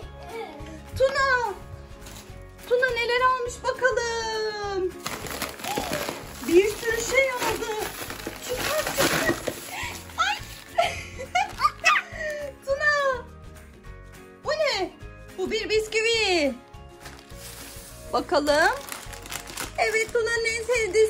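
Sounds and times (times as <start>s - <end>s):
background music with voice: 0.0s - 21.0s
plastic bag rustling and crinkling: 5.0s - 12.1s, 16.7s - 21.0s.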